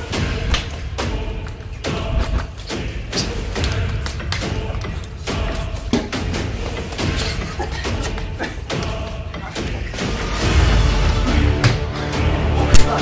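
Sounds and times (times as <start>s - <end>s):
background music with low bass: 0.0s - 13.0s.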